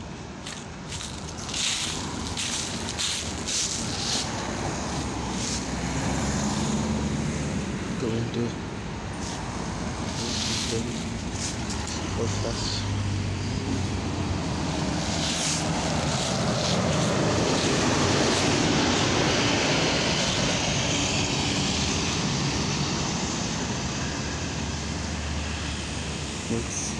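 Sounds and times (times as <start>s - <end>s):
bus engine and road noise: 0.0s - 26.9s.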